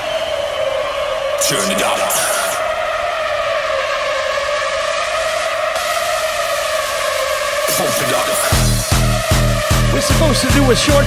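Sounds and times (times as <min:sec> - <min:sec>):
sustained synth chord: 0:02.6 - 0:10.5.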